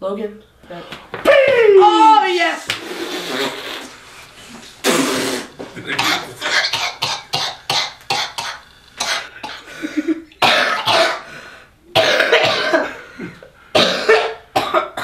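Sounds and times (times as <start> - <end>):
coughing gasps: 4.8 - 15.0
man and boy laughing: 9.7 - 10.4.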